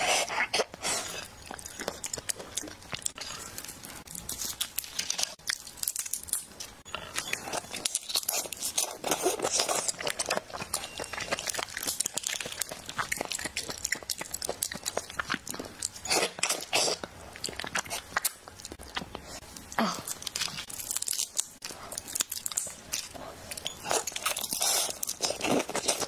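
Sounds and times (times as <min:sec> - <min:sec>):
chewing: 0:00.0 - 0:26.0.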